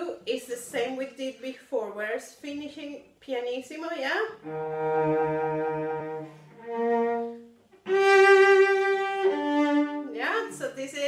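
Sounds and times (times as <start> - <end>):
bowed double bass: 4.4 - 11.0.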